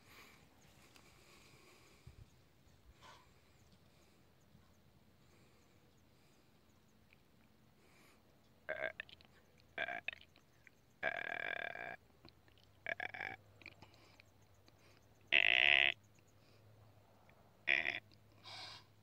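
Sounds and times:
deer calling: 15.3s - 16.0s, 17.7s - 18.9s.

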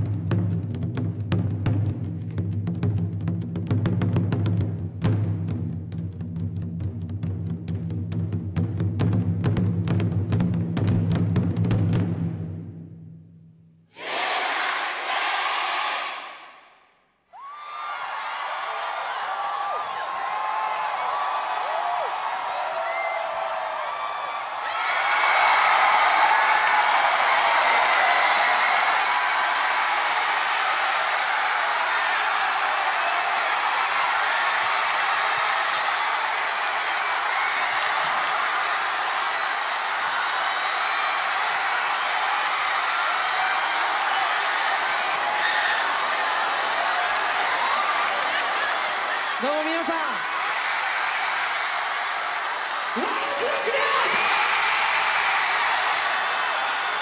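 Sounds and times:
crowd cheering and screaming: 17.3s - 57.0s
crowd clapping: 17.4s - 57.0s.

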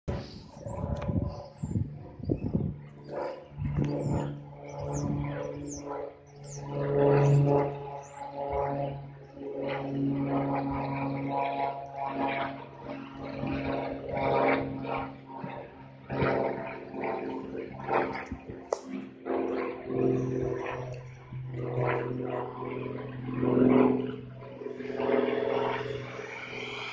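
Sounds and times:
small plane engine droning: 0.0s - 26.9s.

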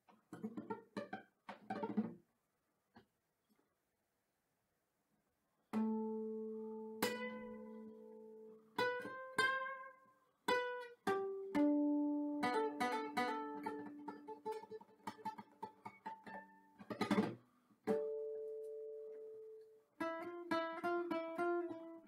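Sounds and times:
fingerstyle acoustic guitar: 5.9s - 22.0s.

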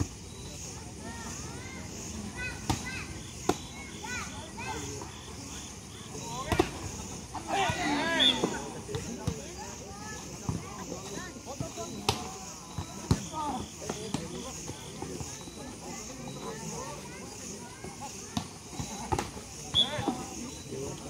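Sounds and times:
players and spectators shouting: 1.0s - 10.1s.

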